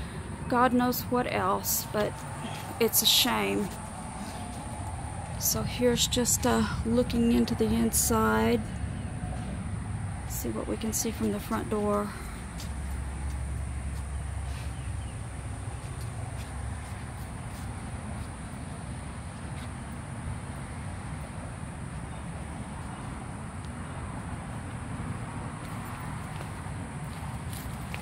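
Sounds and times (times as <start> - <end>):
insects droning: 0.0 - 28.0
light footsteps: 1.8 - 6.7, 10.8 - 28.0.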